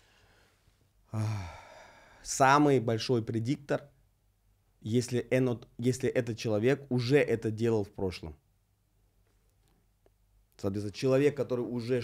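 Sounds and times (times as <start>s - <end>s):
man sighing: 1.1s - 2.2s.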